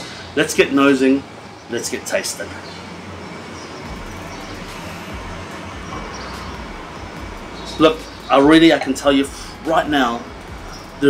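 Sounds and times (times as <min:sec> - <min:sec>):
even hiss: 0:00.0 - 0:11.0
low wavering rumble: 0:03.1 - 0:11.0.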